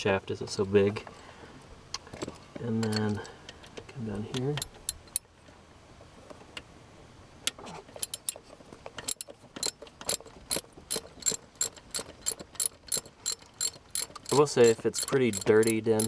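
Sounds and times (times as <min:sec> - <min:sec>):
socket ratchet clicking: 0:04.4 - 0:05.3, 0:08.0 - 0:08.4, 0:09.0 - 0:16.0.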